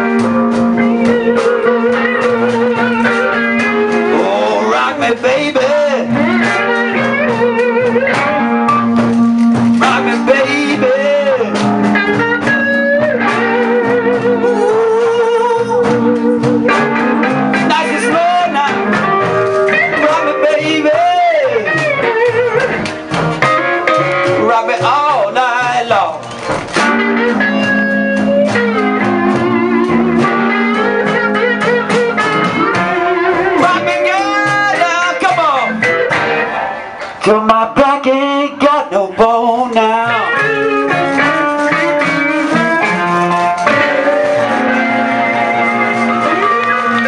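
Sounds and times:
bent sliding guitar notes: 0.0 - 47.0.

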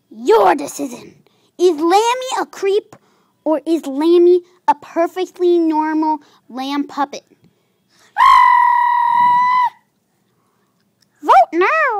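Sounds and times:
high-pitched puppet voice squeal: 8.2 - 9.9.

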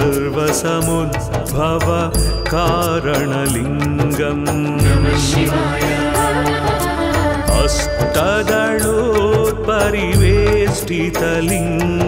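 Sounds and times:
ornamented melody line: 2.3 - 11.8
steady low drone: 4.2 - 10.5.

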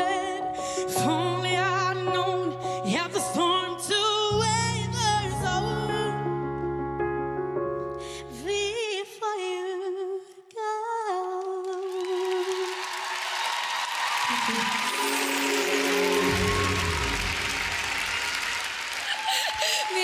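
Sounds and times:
audience applause and cheering: 11.7 - 20.0.

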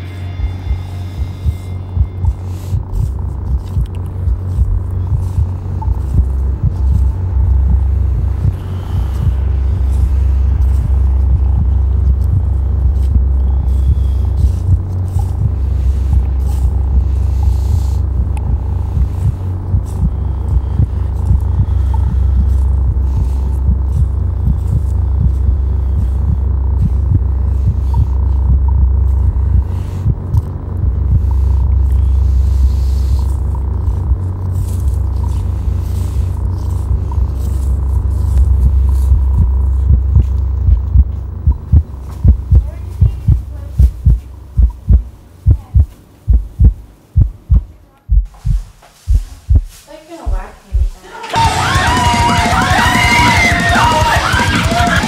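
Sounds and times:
loud low drone: 0.0 - 49.7
deep regular thumps: 0.0 - 55.0.

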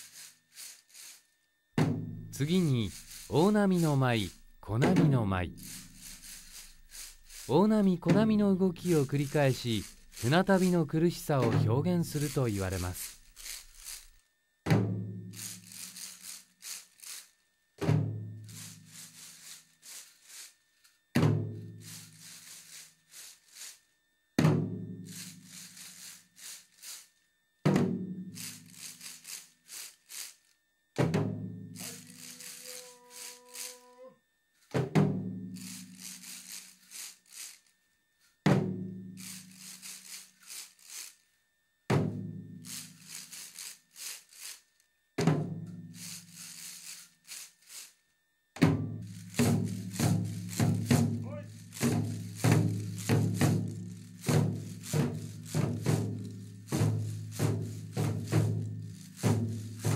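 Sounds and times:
wooden clappers rattling: 0.0 - 1.2, 2.4 - 4.6, 5.5 - 14.2, 15.4 - 17.3, 21.8 - 23.8, 28.4 - 30.4, 31.8 - 33.9, 35.6 - 37.7, 39.2 - 41.2, 42.7 - 44.7, 46.0 - 47.9, 49.1 - 59.9
scraped sticks: 0.0 - 1.3, 2.4 - 14.2, 15.4 - 17.4, 18.5 - 20.6, 21.8 - 23.8, 25.1 - 27.1, 31.8 - 34.1, 35.6 - 37.7, 39.2 - 41.2, 46.0 - 47.9, 49.0 - 59.9
drum beats ringing: 1.8 - 13.1.

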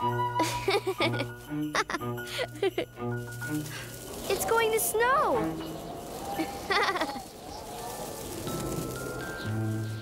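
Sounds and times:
cartoon bear cub laughing: 0.4 - 2.9, 6.7 - 7.2
soft background music: 8.0 - 10.0.

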